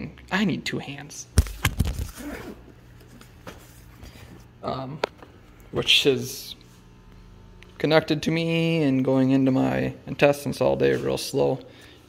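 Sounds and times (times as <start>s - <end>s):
backpack zipper pulled open: 2.0s - 2.7s.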